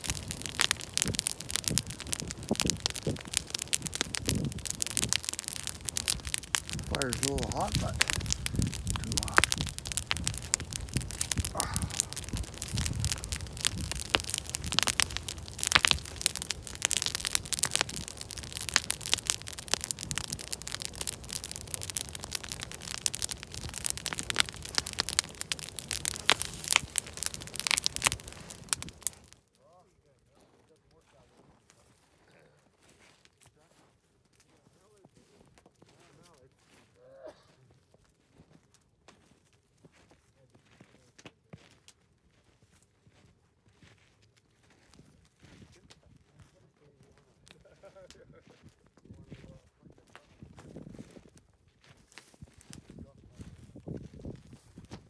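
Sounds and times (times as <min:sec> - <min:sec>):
wood fire crackling and popping: 0:00.0 - 0:29.9, 0:43.8 - 0:55.0.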